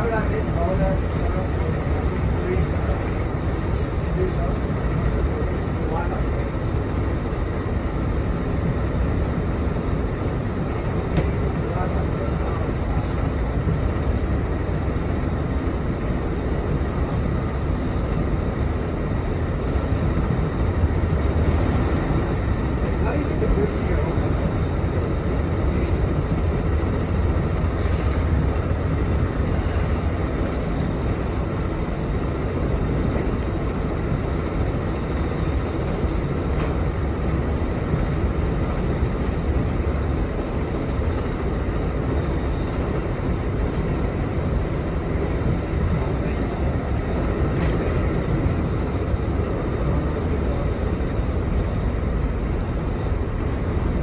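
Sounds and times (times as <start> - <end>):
train rumble and rail noise: 0.0 - 54.0
brief hiss: 3.7 - 4.0, 27.7 - 28.5.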